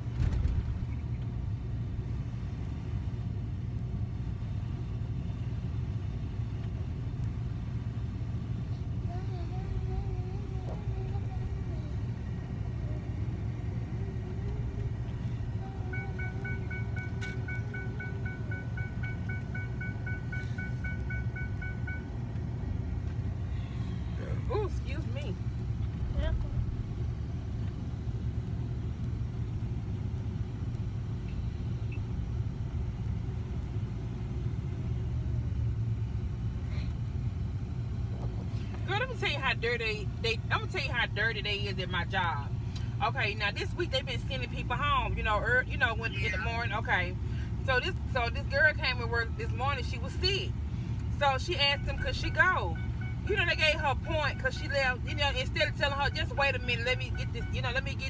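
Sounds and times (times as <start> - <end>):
car engine rumble from cabin: 0.0 - 58.0
rapid two-tone electronic beeping: 15.9 - 22.1.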